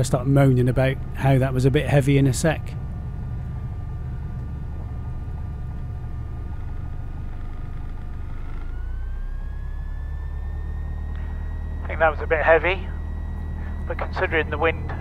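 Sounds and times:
aircraft engine low drone: 0.0s - 15.0s
thin whine rising in pitch: 0.0s - 15.0s.

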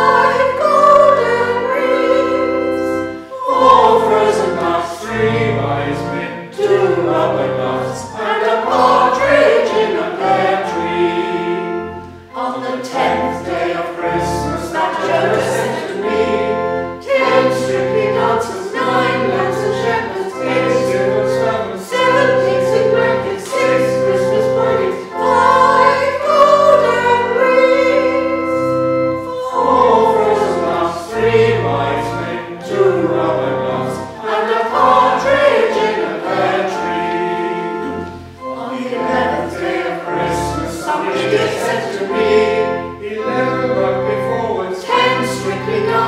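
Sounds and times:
church choir singing held chords: 0.0s - 46.0s.

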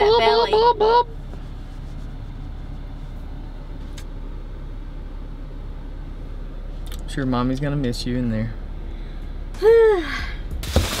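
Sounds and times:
engine rumbling: 0.0s - 11.0s.

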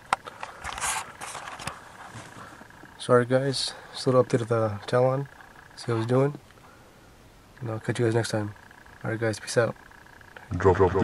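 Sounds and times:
camera handling rustling: 0.4s - 2.7s.

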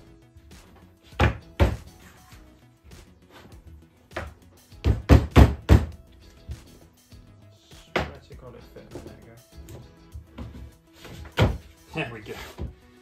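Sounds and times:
hands thudding wooden panel: 1.2s - 1.9s, 4.1s - 6.0s, 10.3s - 11.7s.

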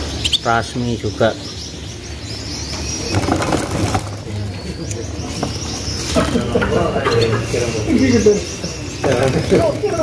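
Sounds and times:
canaries chirping and twittering: 0.0s - 10.0s.

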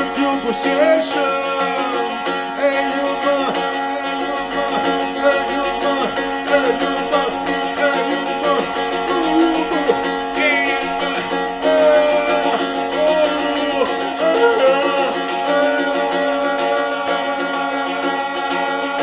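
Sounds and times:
man singing: 0.0s - 19.0s
plucked long-necked lute: 0.0s - 19.0s.

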